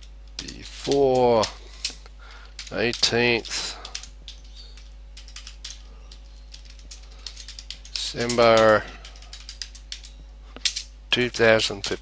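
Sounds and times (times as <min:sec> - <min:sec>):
keyboard keystrokes: 0:03.8 - 0:10.8.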